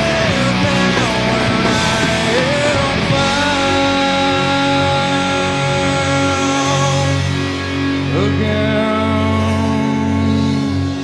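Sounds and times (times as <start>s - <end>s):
electric guitar ringing notes: 0.0s - 11.0s
rock band backing track: 0.0s - 11.0s.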